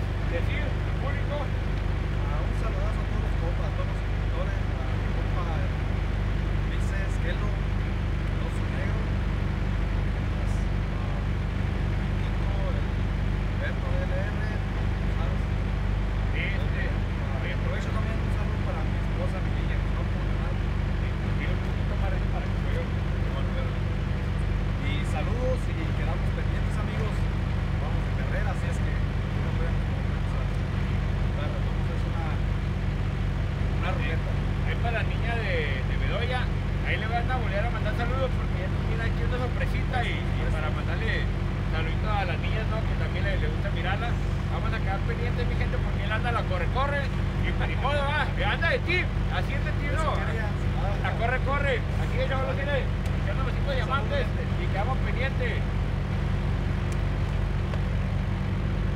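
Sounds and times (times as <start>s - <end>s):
diesel truck engine idling: 0.0s - 58.9s.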